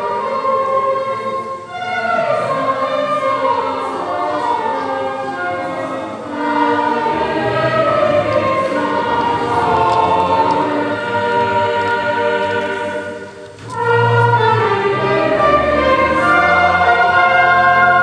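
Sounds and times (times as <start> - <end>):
choir singing sustained chords: 0.0 - 18.0
orchestra playing: 0.0 - 18.0.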